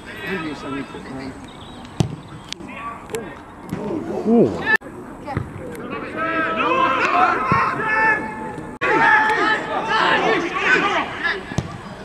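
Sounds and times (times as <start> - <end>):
football kicked thud: 2.0 - 2.3
people shouting: 5.9 - 11.6.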